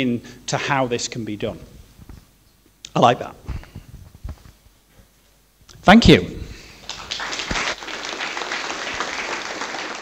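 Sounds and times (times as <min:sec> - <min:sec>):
audience applauding: 0:06.8 - 0:10.0.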